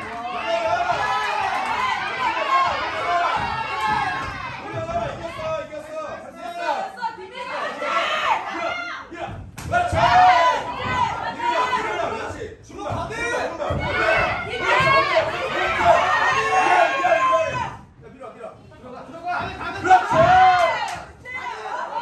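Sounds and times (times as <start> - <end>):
people shouting: 0.0 - 17.9, 19.2 - 22.0.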